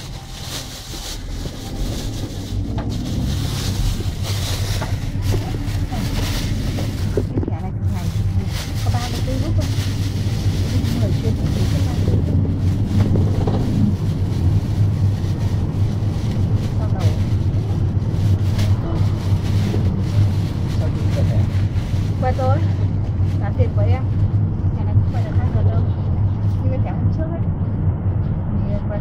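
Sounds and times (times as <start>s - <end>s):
bus engine drone: 0.0s - 29.0s
road noise: 0.0s - 29.0s.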